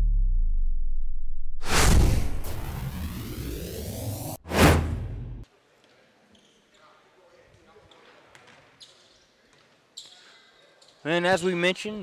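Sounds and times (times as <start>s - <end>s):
loud swoosh effect: 1.6s - 5.4s.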